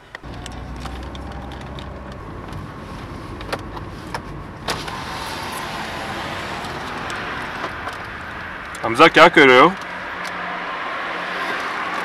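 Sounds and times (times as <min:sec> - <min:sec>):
car engine humming: 0:00.0 - 0:12.0
road noise: 0:00.0 - 0:12.0.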